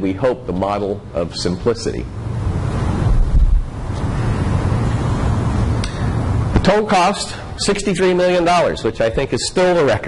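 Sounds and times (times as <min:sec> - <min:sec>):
wind buffeting microphone: 0:02.4 - 0:05.2.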